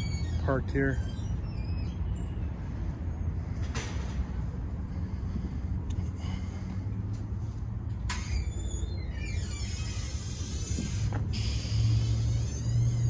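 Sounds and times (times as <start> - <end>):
vehicle engine rumble and traffic: 0.0 - 13.0.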